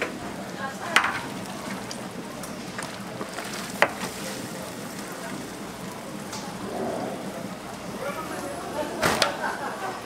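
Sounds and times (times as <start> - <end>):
water boiling and bubbling: 0.0 - 10.0.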